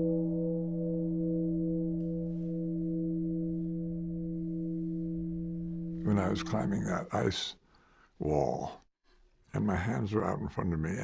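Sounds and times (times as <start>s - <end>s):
temple bell ringing: 0.0s - 7.2s.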